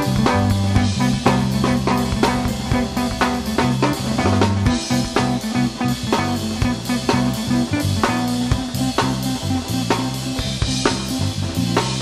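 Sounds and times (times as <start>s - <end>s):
drum kit steady beat: 0.0s - 12.0s
guitar: 0.0s - 12.0s
sustained bass notes: 0.0s - 12.0s.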